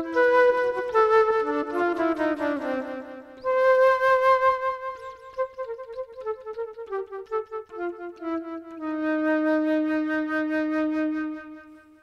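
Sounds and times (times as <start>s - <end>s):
solo flute improvising: 0.0s - 12.0s.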